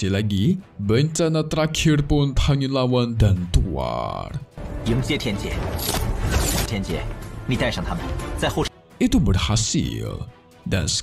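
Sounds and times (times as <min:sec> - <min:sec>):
cartoon soundtrack music: 0:00.0 - 0:11.0.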